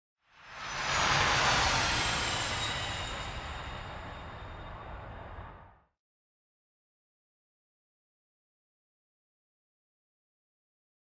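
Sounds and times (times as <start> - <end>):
faint high whine: 0.4 - 5.9.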